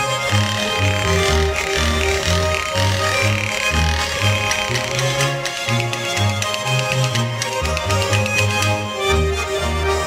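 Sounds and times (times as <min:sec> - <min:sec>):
wooden clapper boards rattling: 0:00.0 - 0:08.9
button accordions playing folk music: 0:00.0 - 0:10.0
plucked double bass: 0:00.0 - 0:10.0.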